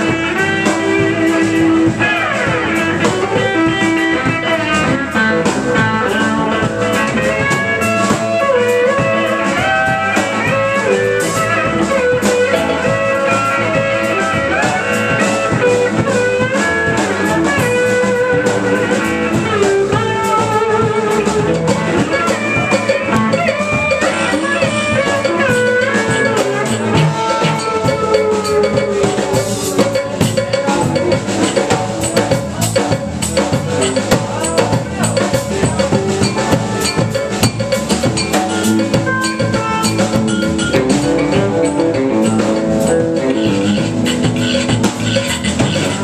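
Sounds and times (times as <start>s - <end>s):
bass guitar: 0.0s - 46.0s
drum kit: 0.0s - 46.0s
electric guitar lead with bent notes: 0.0s - 46.0s.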